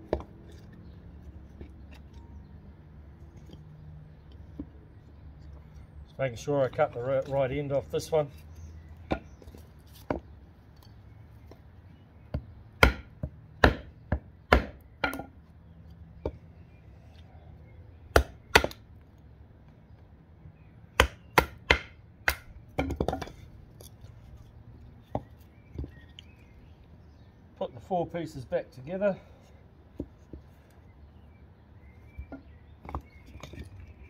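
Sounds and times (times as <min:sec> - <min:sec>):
knife chopping into log: 0:12.8 - 0:15.3.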